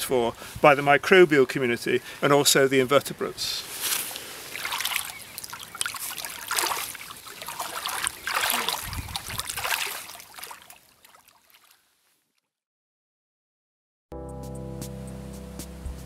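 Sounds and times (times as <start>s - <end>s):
hand sloshing stream water: 3.7s - 12.0s.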